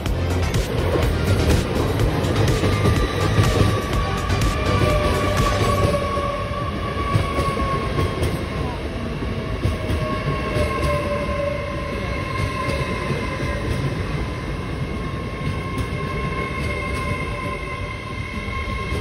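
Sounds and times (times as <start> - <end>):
high whine: 0.0 - 7.6
train wheels rumbling on rails: 0.0 - 19.0.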